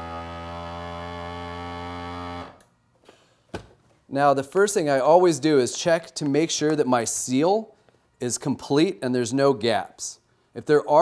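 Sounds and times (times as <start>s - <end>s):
vacuum sealer pump humming: 0.0s - 2.7s.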